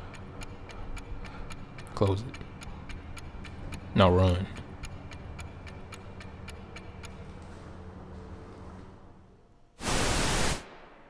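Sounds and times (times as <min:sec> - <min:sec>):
clock-like ticking: 0:00.0 - 0:07.4.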